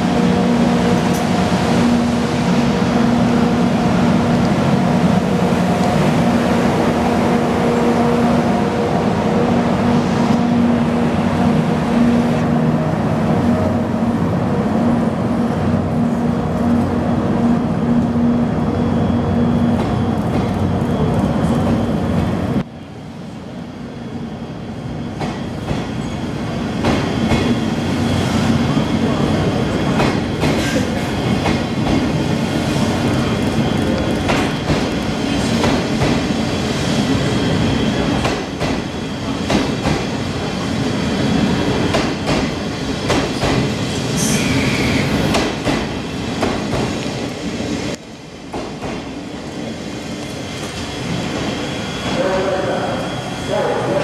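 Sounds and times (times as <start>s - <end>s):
train rumbling past: 0.0s - 54.0s.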